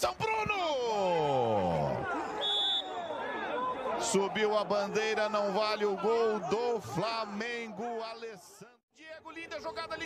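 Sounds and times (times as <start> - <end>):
shouting voices: 0.2 - 8.8
referee's whistle blast: 2.4 - 3.2.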